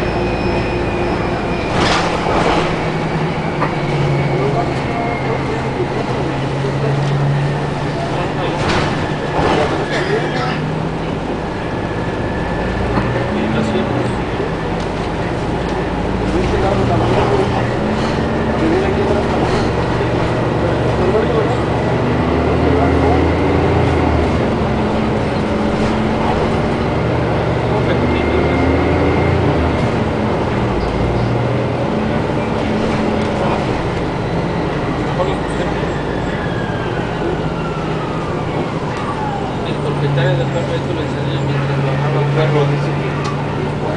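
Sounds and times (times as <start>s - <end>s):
bus drivetrain hum: 0.0s - 43.9s.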